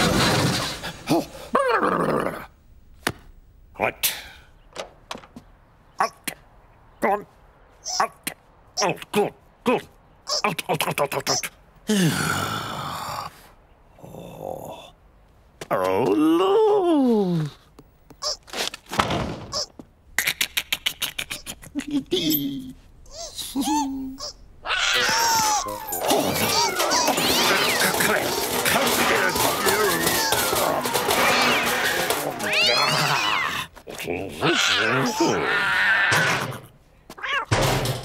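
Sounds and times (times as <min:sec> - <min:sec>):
cartoon character groaning: 0:22.0 - 0:27.8, 0:34.4 - 0:36.5
cartoon cat yowling and meowing: 0:23.9 - 0:27.8
lively background music: 0:27.2 - 0:32.8.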